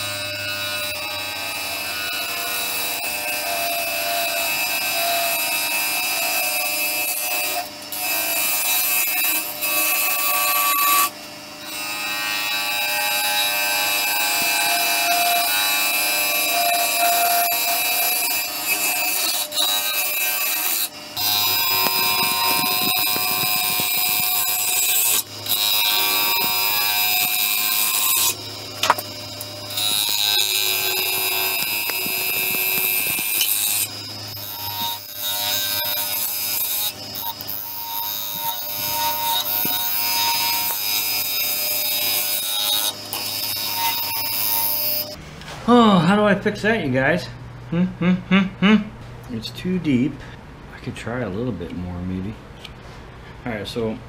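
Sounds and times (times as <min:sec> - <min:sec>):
gouge scraping wood on lathe: 0:16.5 - 0:29.0, 0:29.8 - 0:41.0.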